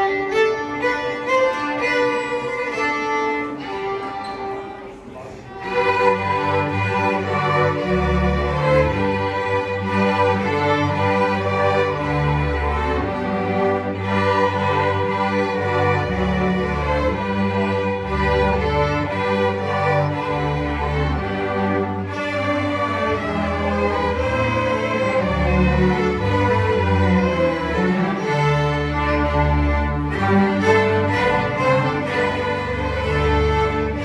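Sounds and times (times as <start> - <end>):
string orchestra playing: 0.0 - 34.0.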